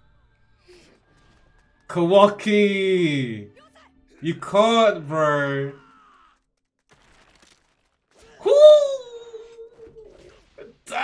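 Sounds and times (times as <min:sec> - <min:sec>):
man crying woo: 0:08.4 - 0:09.8.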